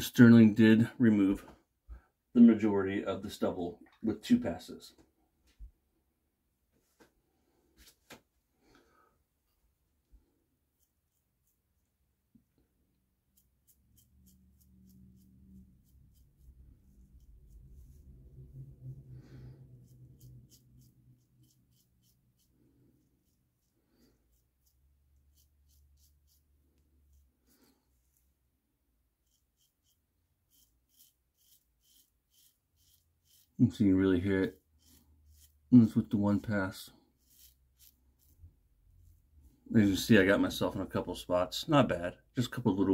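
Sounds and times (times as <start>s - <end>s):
razor scratching through stubble: 10.8s - 11.9s, 13.2s - 18.3s, 19.8s - 27.3s, 29.2s - 39.3s
soft low rumble: 16.4s - 20.6s.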